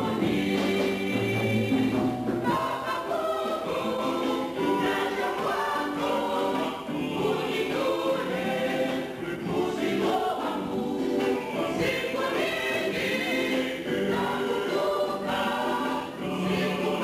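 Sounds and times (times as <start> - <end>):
choir singing a hymn: 0.0 - 17.0.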